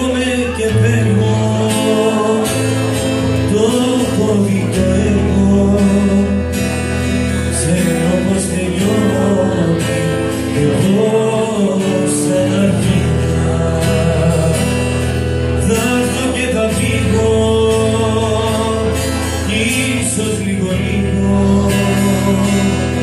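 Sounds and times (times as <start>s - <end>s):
acoustic guitar strummed: 0.0s - 23.0s
man singing into a microphone: 0.0s - 23.0s.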